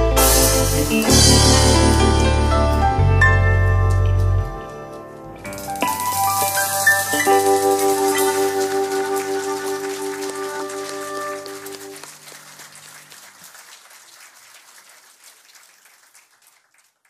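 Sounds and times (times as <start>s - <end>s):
audience applause: 6.7s - 17.0s.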